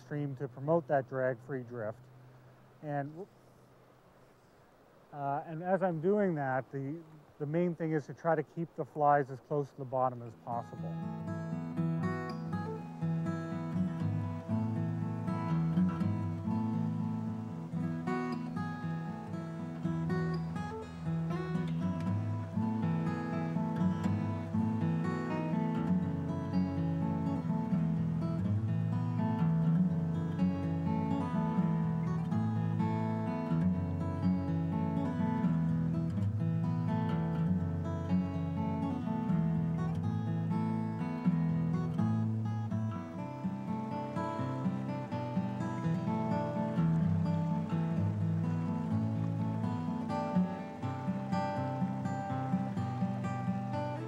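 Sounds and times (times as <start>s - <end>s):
acoustic guitar strumming: 9.6s - 54.0s.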